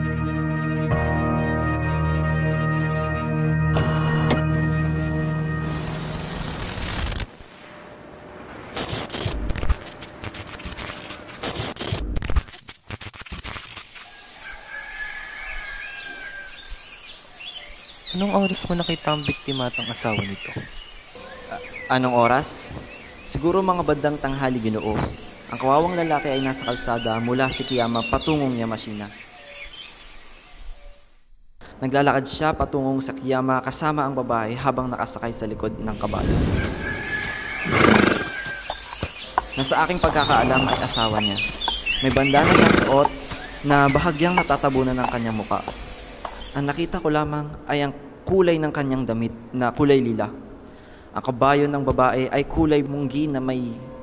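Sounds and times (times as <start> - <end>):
long drawn-out bird call: 36.6 - 43.7
horse whinnying: 36.9 - 38.6, 42.4 - 43.0.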